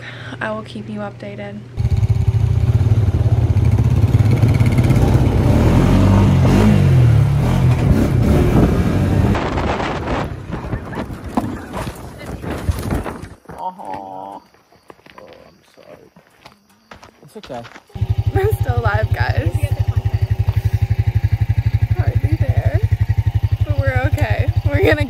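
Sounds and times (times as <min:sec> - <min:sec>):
quad bike engine revving: 0:01.8 - 0:11.8, 0:18.0 - 0:25.0
rough rattling and knocking: 0:09.4 - 0:13.6.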